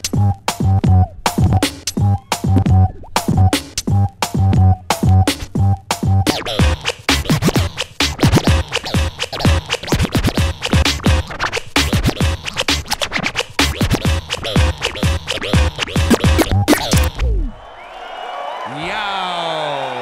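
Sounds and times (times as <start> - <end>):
drum beat: 0.0 - 17.3
vinyl scratching: 0.0 - 17.5.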